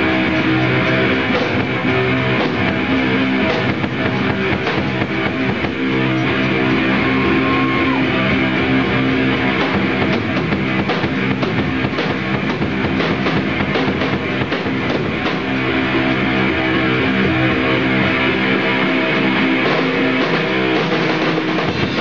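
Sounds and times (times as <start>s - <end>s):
drum kit: 0.0s - 22.0s
electric guitar: 0.0s - 22.0s.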